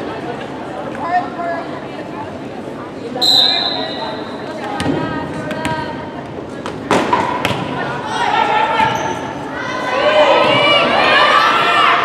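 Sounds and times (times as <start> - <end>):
players and spectators shouting: 8.0 - 12.0.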